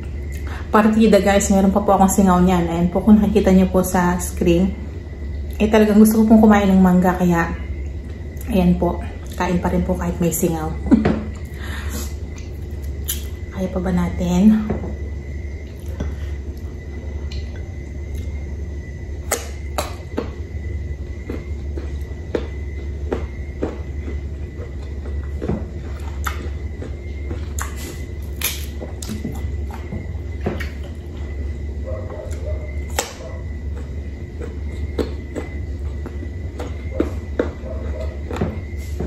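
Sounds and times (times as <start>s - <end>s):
steady low hum: 0.0s - 39.0s
chewing crunchy mango: 12.2s - 13.5s, 19.2s - 39.0s.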